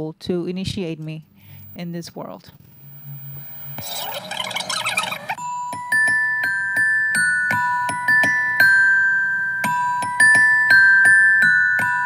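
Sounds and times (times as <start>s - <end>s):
jumbled noisy sound with tones: 1.1s - 5.4s
low hum: 1.2s - 5.4s.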